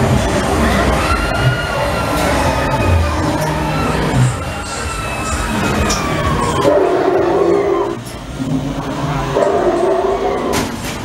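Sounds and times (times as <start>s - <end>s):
eerie music: 0.0s - 10.7s
ride car rumbling: 0.0s - 11.0s.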